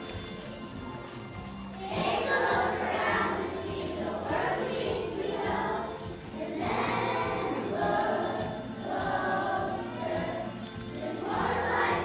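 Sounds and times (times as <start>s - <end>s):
children's choir singing: 1.8s - 12.0s.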